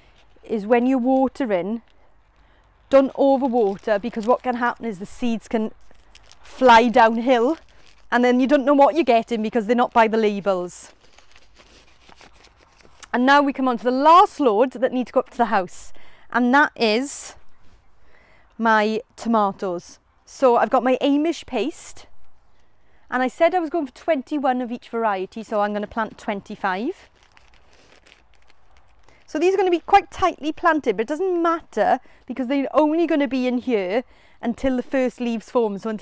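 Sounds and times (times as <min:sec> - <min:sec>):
paper seed packet rustling: 0:00.0 - 0:14.1, 0:25.3 - 0:31.4.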